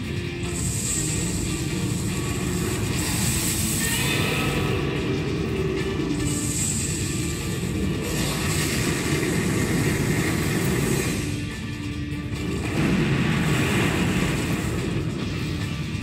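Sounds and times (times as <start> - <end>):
film soundtrack music: 0.0 - 16.0
low rumbling and booming effects: 7.0 - 16.0.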